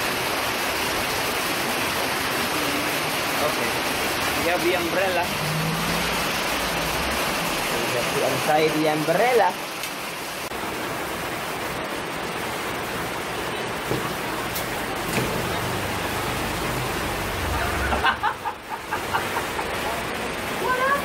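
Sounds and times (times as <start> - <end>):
steady rain falling: 0.0 - 21.0.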